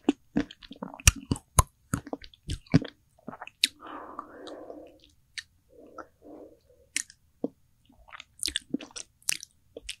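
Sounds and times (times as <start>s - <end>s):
lip smacks and tongue clicks: 0.0s - 3.8s, 6.9s - 10.0s.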